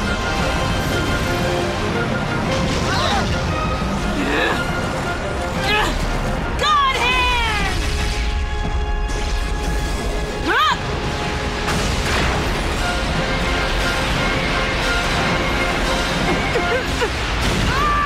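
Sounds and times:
dramatic orchestral battle music: 0.0s - 18.0s.

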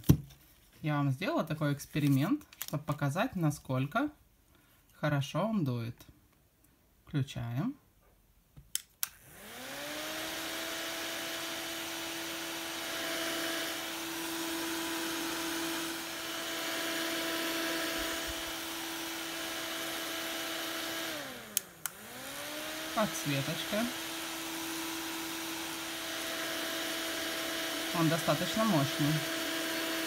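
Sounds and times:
small fan motor whining: 9.2s - 30.0s.

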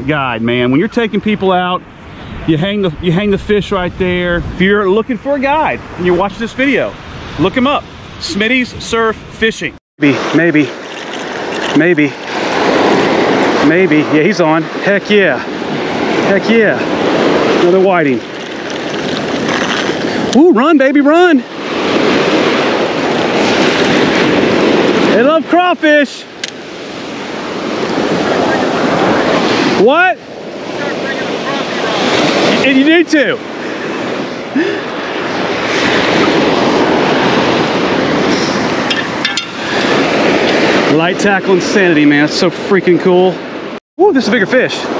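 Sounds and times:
surf washing on beach: 0.0s - 44.9s
wind on microphone: 0.7s - 14.8s, 15.4s - 20.5s, 21.4s - 25.2s, 26.3s - 32.8s, 33.4s - 41.9s.

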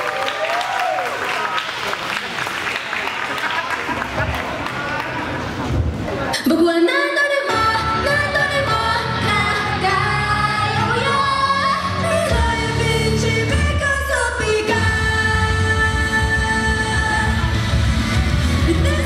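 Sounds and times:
woman singing pop song: 6.4s - 18.0s, 18.6s - 19.0s
backing music with bass and beat: 14.7s - 19.0s.

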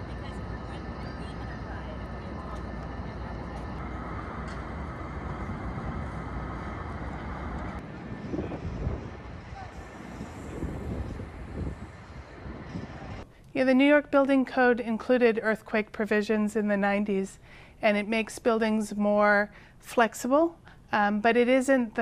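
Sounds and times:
faint voices of passers-by: 0.0s - 3.8s, 8.0s - 13.2s
traffic hum: 0.0s - 14.0s.

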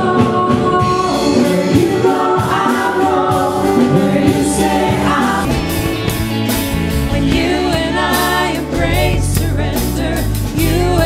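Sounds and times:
group singing worship song: 0.0s - 11.0s
musical accompaniment: 0.1s - 11.0s.

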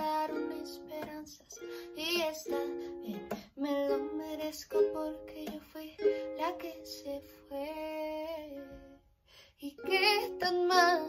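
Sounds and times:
ukulele strumming chords: 0.0s - 8.9s, 9.7s - 11.0s.

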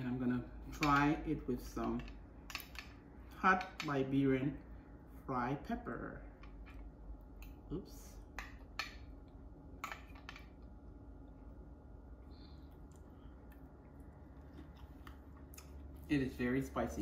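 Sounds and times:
person chewing crispy food: 12.2s - 16.0s.

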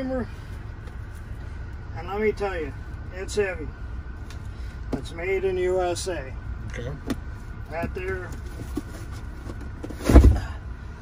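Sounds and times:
heavy box thumping on floor: 9.9s - 10.5s.

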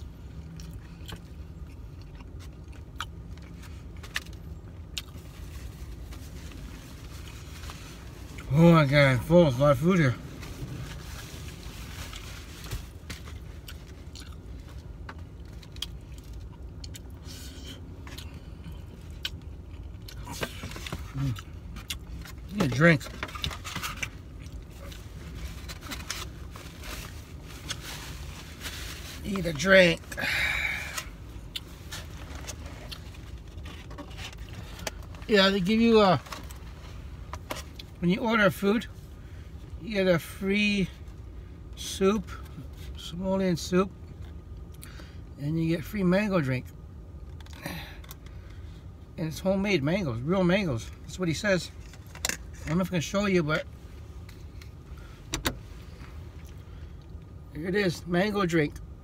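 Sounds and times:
low rumble in car cabin: 0.0s - 59.0s
chewing: 0.4s - 4.3s.

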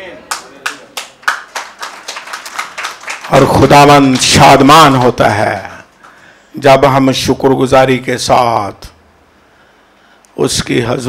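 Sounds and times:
congregation clapping: 0.2s - 6.2s.

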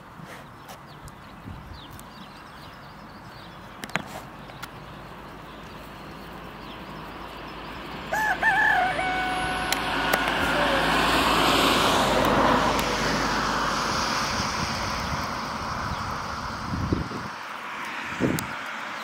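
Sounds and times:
broad rushing noise: 3.9s - 19.0s
rooster crowing: 8.1s - 11.4s.

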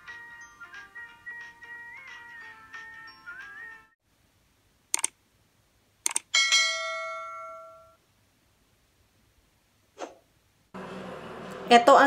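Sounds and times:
mouse clicks: 4.9s - 5.2s, 6.0s - 6.3s
loud bell ding: 6.4s - 8.0s.

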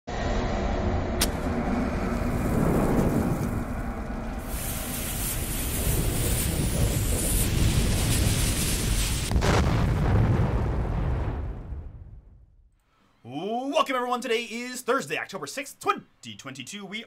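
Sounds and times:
low rumble: 0.1s - 12.8s
fuse and flames hissing: 1.2s - 11.8s.

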